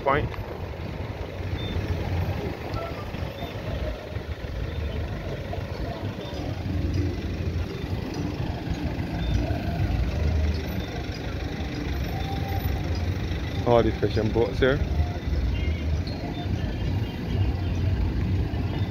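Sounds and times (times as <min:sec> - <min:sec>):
cars driving past: 0:00.0 - 0:18.9.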